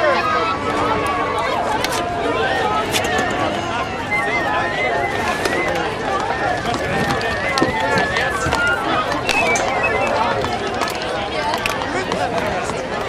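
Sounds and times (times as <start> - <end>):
many voices speaking at once: 0.0 - 13.0.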